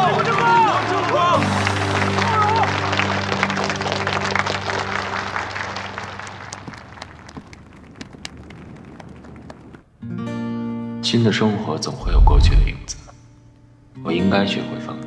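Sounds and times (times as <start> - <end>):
background music: 0.0 - 6.5
crowd applauding: 0.0 - 9.8.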